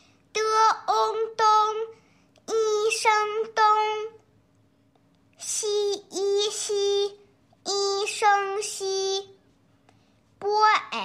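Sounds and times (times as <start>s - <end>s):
child reading syllables aloud: 0.0s - 4.2s, 5.4s - 9.4s, 10.4s - 11.0s.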